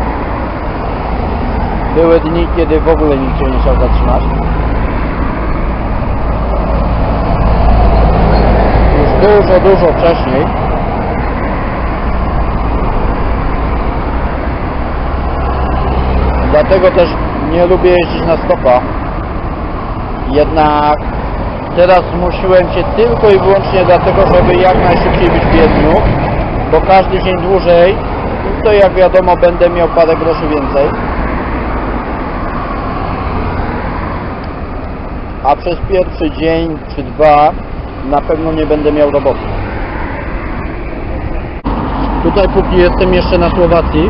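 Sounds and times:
passing vehicle rushing: 0.0s - 44.0s
road traffic roaring: 0.0s - 44.0s.

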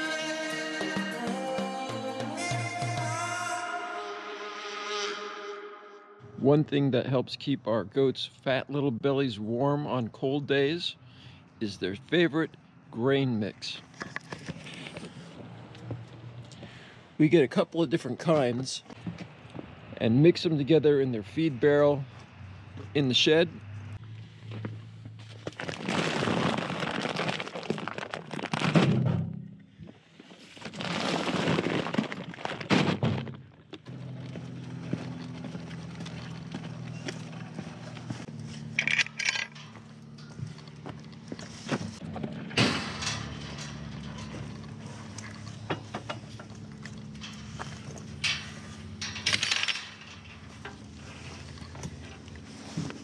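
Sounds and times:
plastic sacks scraping on floor: 25.5s - 28.9s, 30.3s - 33.0s.

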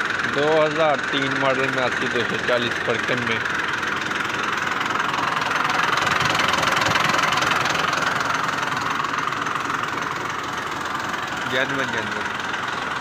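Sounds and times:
diesel tractor engine idling: 0.0s - 13.0s.

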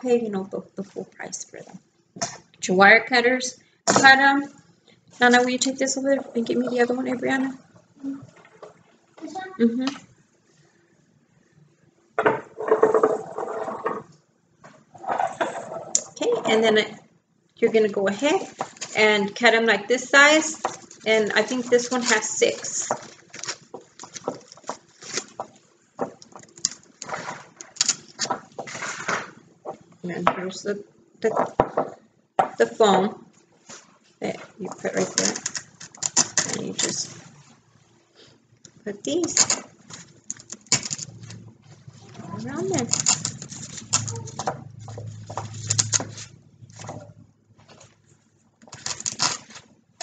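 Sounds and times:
low steady hum: 0.0s - 50.0s
rustling of artificial flowers: 18.1s - 19.4s, 20.1s - 29.9s, 32.8s - 50.0s.

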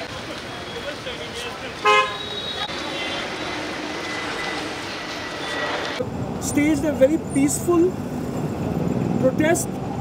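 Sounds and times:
street noise: 0.0s - 10.0s
vehicle horn toot: 1.8s - 3.2s.

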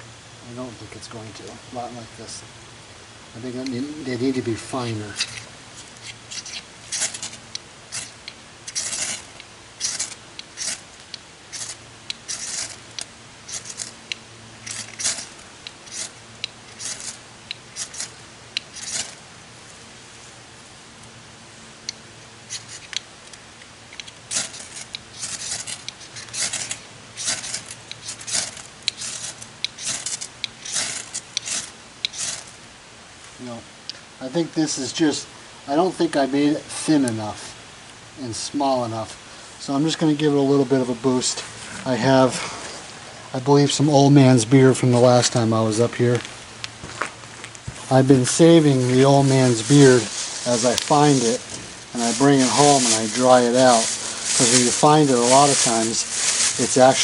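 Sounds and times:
ferro rod rasping scrapes: 4.8s - 10.8s, 11.5s - 12.8s, 13.5s - 13.9s, 14.6s - 17.2s, 17.8s - 18.1s, 18.7s - 19.2s, 24.3s - 32.5s.

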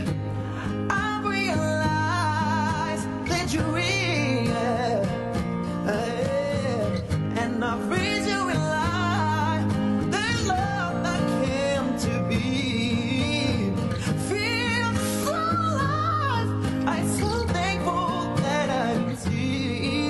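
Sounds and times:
man singing with vibrato: 0.0s - 20.0s
plucked guitar: 0.0s - 20.0s.

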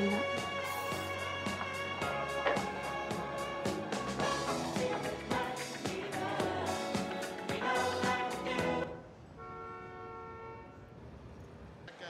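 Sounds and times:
car horn: 0.0s - 4.1s, 9.4s - 10.9s
city traffic rumble: 0.0s - 5.7s, 8.6s - 12.0s.

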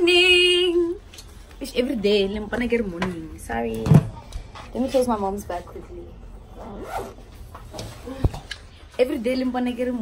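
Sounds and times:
backpack zipper being pulled: 6.6s - 7.2s.

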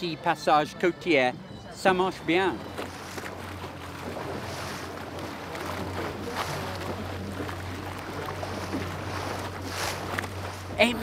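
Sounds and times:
water splashing along a boat: 0.0s - 11.0s.

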